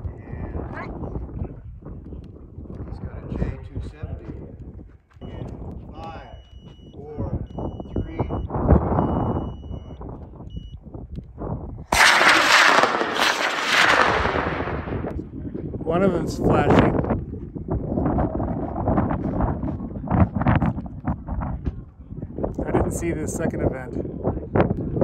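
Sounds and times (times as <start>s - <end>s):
wind on microphone: 0.0s - 25.0s
voices: 5.2s - 10.0s
short high electronic beeps: 7.6s - 10.7s
rocket motors roaring: 11.9s - 15.2s.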